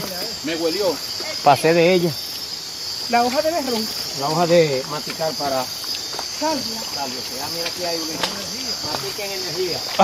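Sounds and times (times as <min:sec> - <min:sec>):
night insects chirping: 0:00.0 - 0:10.0
people talking: 0:03.1 - 0:05.7, 0:06.4 - 0:10.0.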